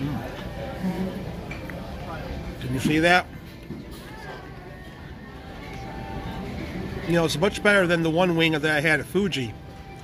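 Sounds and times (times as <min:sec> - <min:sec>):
faint distant voices: 0:00.0 - 0:09.5.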